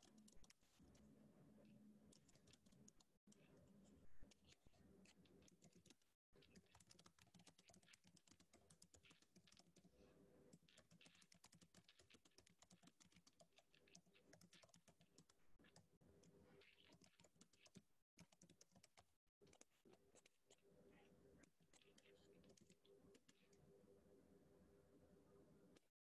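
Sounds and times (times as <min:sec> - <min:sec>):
faint keyboard typing: 0:00.0 - 0:23.8.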